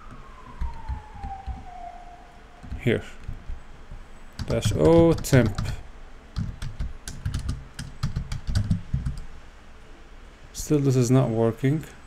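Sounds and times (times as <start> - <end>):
faint tone sliding down: 0.0 - 6.0.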